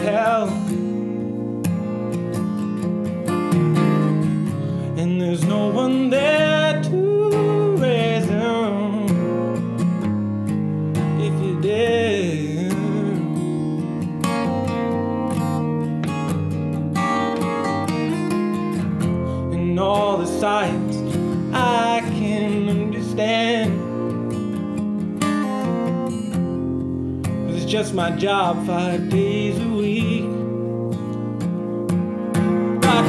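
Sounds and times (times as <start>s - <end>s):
man singing: 0.0s - 1.2s, 4.8s - 9.6s, 11.0s - 13.8s, 19.1s - 24.3s, 27.4s - 30.6s, 32.6s - 33.0s
acoustic guitar strumming: 0.0s - 33.0s.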